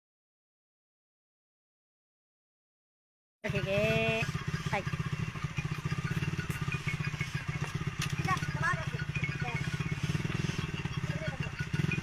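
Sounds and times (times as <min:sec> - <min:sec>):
motorcycle engine fast idle: 0:03.5 - 0:12.0.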